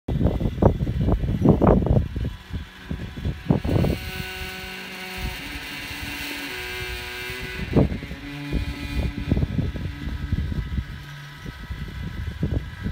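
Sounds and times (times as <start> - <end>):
antenna rotator motor grinding: 0.1 - 12.9
wind buffeting microphone: 0.1 - 12.9.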